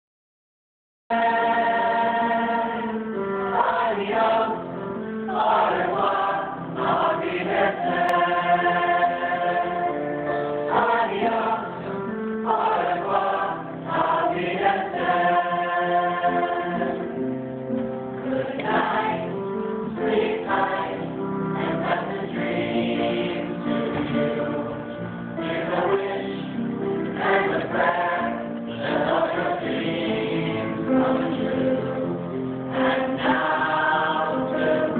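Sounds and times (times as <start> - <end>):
choir singing held chords: 1.1 - 17.4, 18.2 - 34.9.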